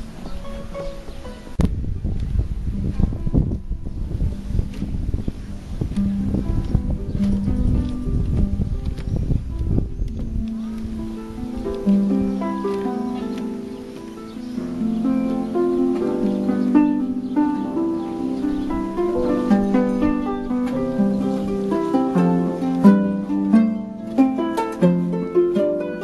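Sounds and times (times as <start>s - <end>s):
harp playing: 0.0s - 1.6s, 2.5s - 26.0s
low fluttering rumble on microphone: 1.6s - 11.7s.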